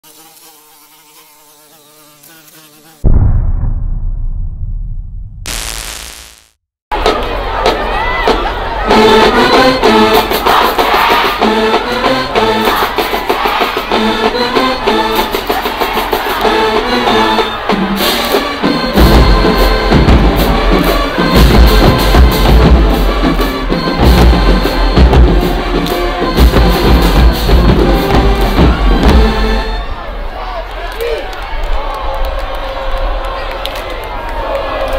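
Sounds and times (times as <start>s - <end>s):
wavering insect buzz: 0.0s - 3.0s, 5.5s - 6.6s
deep boom with low rumble: 3.0s - 6.2s
marching band brass: 8.2s - 30.2s
drumline with bass drums: 18.8s - 29.5s.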